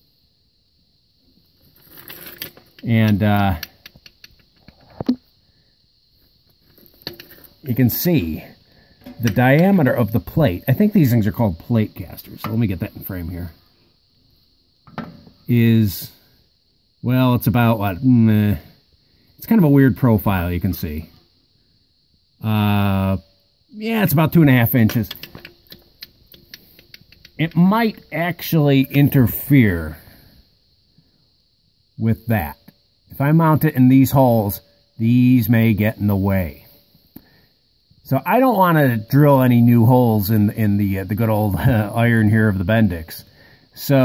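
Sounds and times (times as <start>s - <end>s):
handling clicks and taps: 24.9s - 27.6s.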